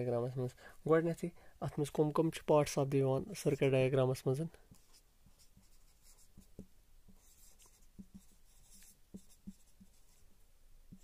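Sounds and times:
soft marker taps: 0:04.6 - 0:10.2
marker scratching on whiteboard: 0:04.7 - 0:10.3.

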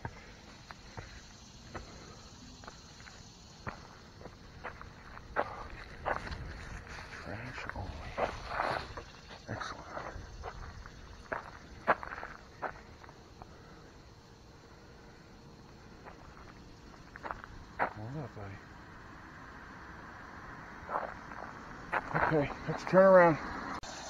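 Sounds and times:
footsteps crunching on gravel: 0:00.0 - 0:13.5, 0:15.7 - 0:18.5, 0:20.8 - 0:23.0.

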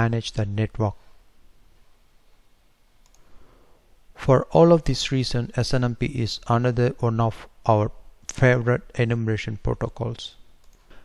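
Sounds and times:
faint background hiss: 0:00.0 - 0:11.0
computer mouse click: 0:03.0 - 0:03.3, 0:10.6 - 0:10.9.

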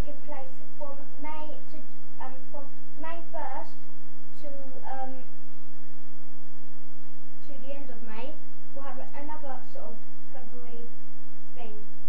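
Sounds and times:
steady electrical hum: 0:00.0 - 0:12.0.

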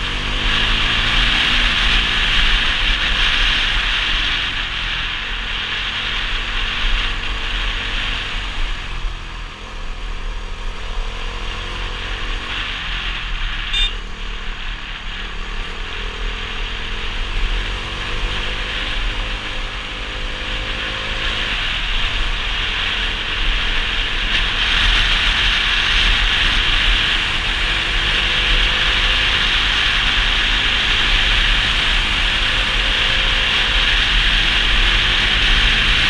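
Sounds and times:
motorcycle engine: 0:00.0 - 0:36.0
wind rushing over microphone: 0:00.0 - 0:36.0.

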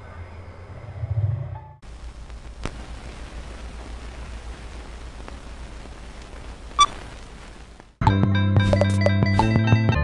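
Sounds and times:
film reel hiss with crackle: 0:01.8 - 0:08.0.

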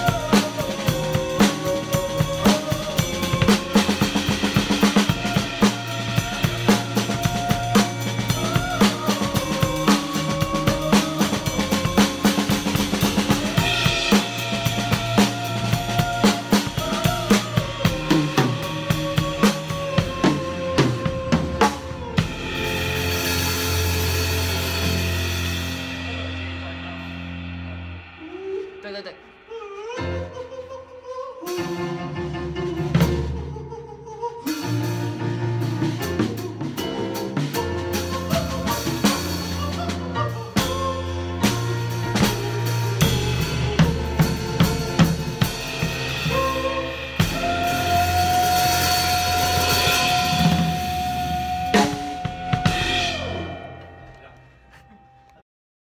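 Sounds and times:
drum strokes: 0:00.0 - 0:30.6, 0:35.7 - 0:55.0
band playing: 0:00.0 - 0:55.4
cymbal crash: 0:22.5 - 0:29.9.

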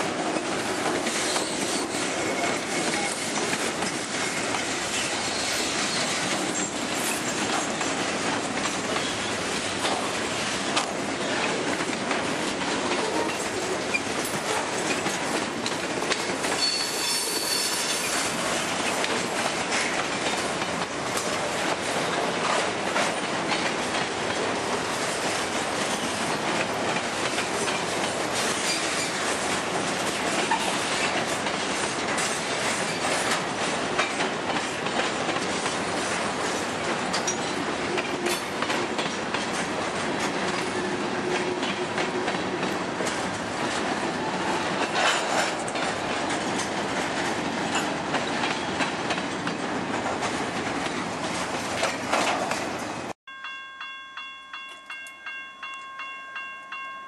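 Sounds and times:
freight train wheels rumbling: 0:00.0 - 0:53.2
wheels clicking over rail joints: 0:00.1 - 0:53.0.

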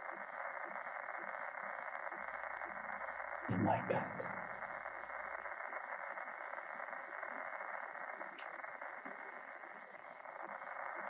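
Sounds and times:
electronic drone with static: 0:03.5 - 0:05.1.

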